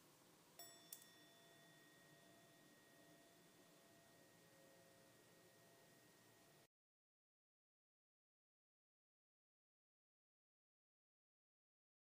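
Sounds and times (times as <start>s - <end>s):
struck chime ringing: 0.6s - 6.7s.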